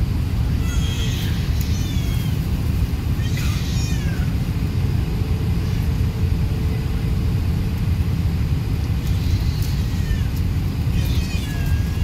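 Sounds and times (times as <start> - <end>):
aircraft engines rumbling: 0.0 - 12.0.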